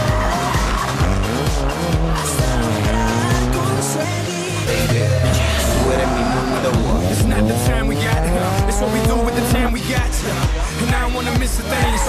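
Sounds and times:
music with steady beat: 0.0 - 5.7, 6.7 - 12.0
rally car engine revving: 0.0 - 12.0.

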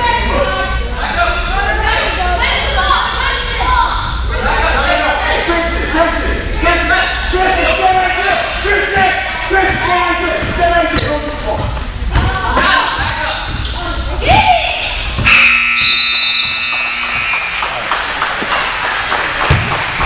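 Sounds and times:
electronic buzzer: 15.2 - 17.8
basketball dribbling on gym floor: 19.5 - 19.8.

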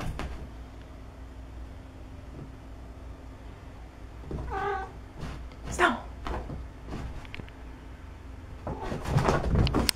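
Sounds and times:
cat meowing: 4.4 - 5.0.

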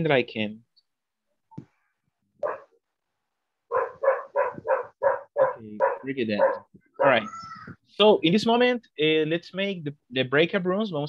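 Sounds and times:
dog barking: 2.4 - 2.8, 3.7 - 7.2.

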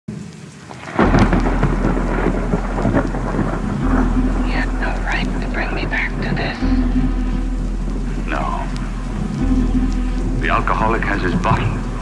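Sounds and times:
rain: 0.1 - 12.0
rumbling thunderclap: 0.6 - 12.0.

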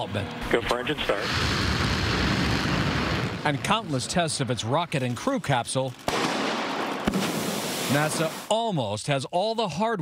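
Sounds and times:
rocket engine roaring: 0.4 - 5.0.

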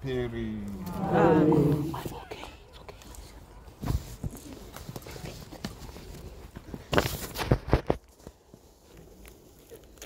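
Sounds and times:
faint voices: 0.6 - 6.5.

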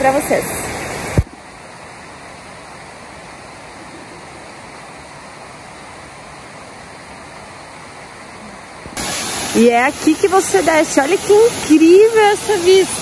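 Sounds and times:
waterfall roaring: 0.0 - 13.0.

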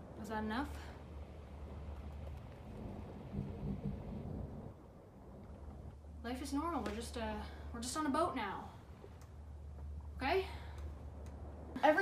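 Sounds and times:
faint low hum: 0.0 - 12.0
low steady rumble: 0.0 - 12.0.

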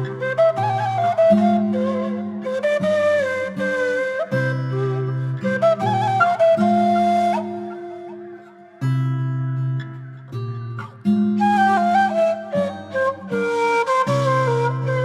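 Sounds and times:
breathy reed flute melody: 0.0 - 10.2, 10.8 - 15.0.

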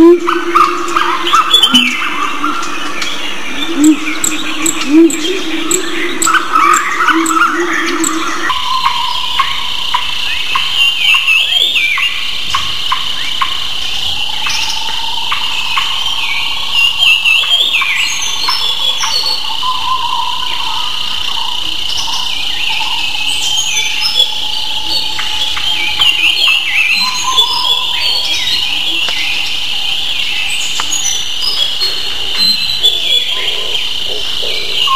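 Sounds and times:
birds chirping: 0.0 - 34.9
insects chirring: 0.0 - 34.9.

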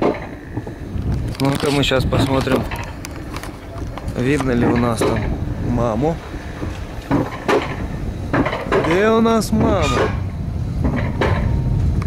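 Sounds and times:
sled clanking on rails: 0.0 - 12.0
sled rumbling on metal rail: 0.0 - 12.0.

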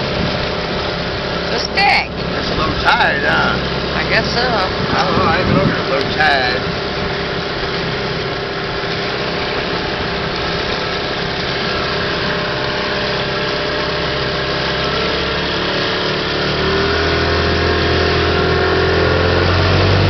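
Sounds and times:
outboard motor running: 0.0 - 20.0.

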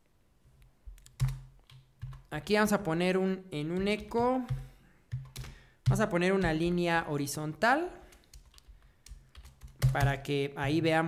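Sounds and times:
computer keyboard keystrokes: 0.9 - 2.3, 3.7 - 6.6, 8.1 - 10.3.

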